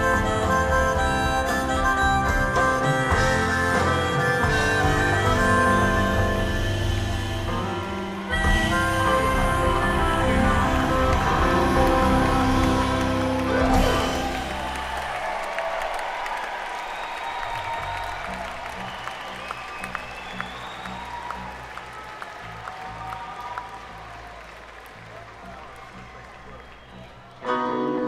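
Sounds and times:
audience applause and cheering: 0:00.0 - 0:28.0
live band final chord: 0:03.1 - 0:15.0.

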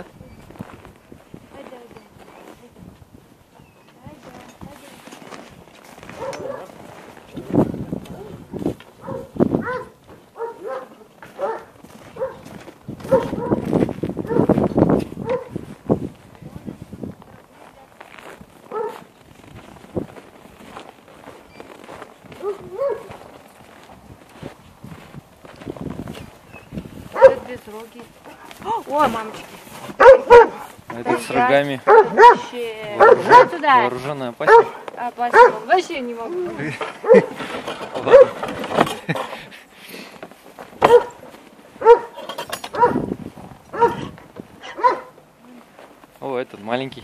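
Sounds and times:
people talking: 0:01.5 - 0:03.0, 0:03.6 - 0:05.0, 0:27.2 - 0:29.4, 0:30.9 - 0:36.8
dog barking: 0:06.1 - 0:06.8, 0:09.0 - 0:14.6, 0:15.2 - 0:15.6, 0:18.7 - 0:19.1, 0:22.4 - 0:23.2, 0:27.1 - 0:27.5, 0:30.0 - 0:33.6, 0:34.4 - 0:35.7, 0:37.0 - 0:37.4, 0:38.0 - 0:38.4, 0:40.8 - 0:41.2, 0:41.8 - 0:43.1, 0:43.7 - 0:45.2.

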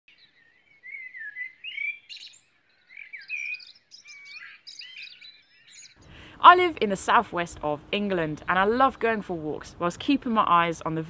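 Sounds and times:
songbird warbling: 0:00.1 - 0:06.3.

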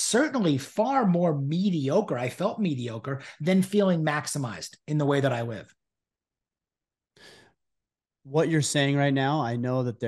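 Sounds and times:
short breath: 0:07.2 - 0:07.6.

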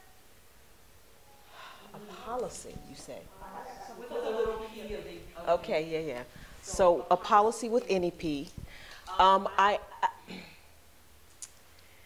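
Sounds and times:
woman speaking: 0:01.9 - 0:10.4.

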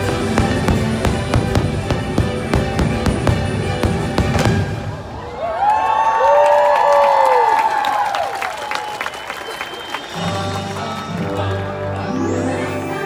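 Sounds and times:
show music: 0:00.0 - 0:05.2
fireworks bangs: 0:00.0 - 0:05.3
crowd cheering and whooping: 0:05.0 - 0:10.6.

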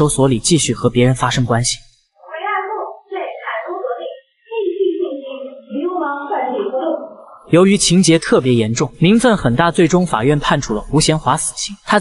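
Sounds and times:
woman's high-pitched voice: 0:02.2 - 0:07.4.

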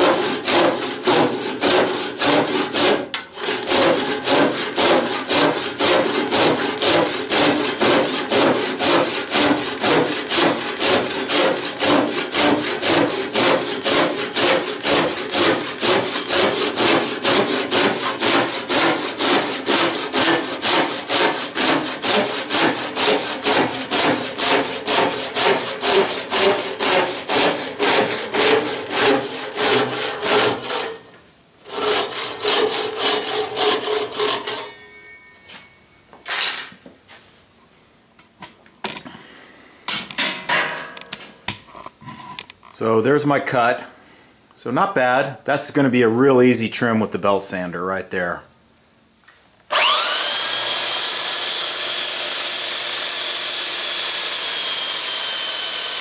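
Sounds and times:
hand saw rasping through wood: 0:00.0 - 0:31.0, 0:31.6 - 0:34.7, 0:49.7 - 0:56.0.

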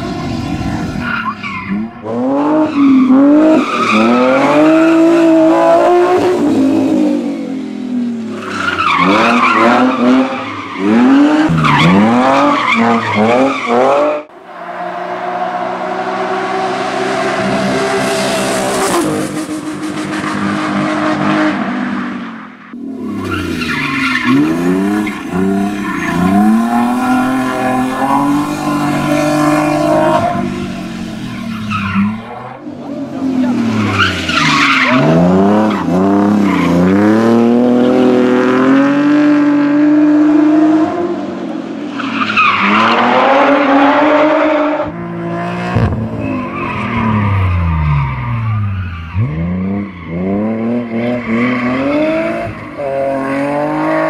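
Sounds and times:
tyres skidding: 0:00.0 - 0:40.7, 0:41.7 - 0:54.0
car engine revving hard: 0:23.1 - 0:32.2.

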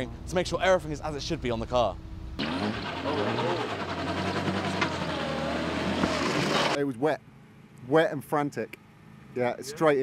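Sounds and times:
people talking: 0:00.0 - 0:02.0, 0:03.0 - 0:03.7, 0:07.9 - 0:08.8, 0:09.4 - 0:10.0
car engine running: 0:00.0 - 0:06.8.

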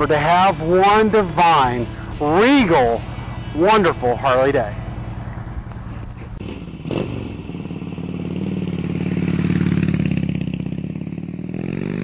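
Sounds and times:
motorcycle engine idling and revving: 0:00.0 - 0:12.0.

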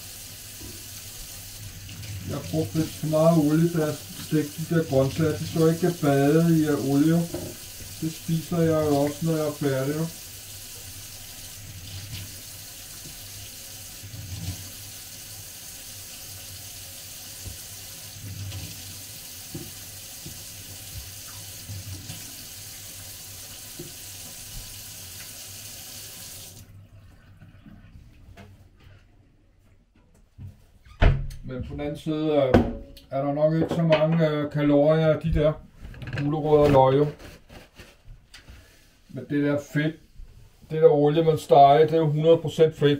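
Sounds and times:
tap water running into sink: 0:00.0 - 0:26.7.

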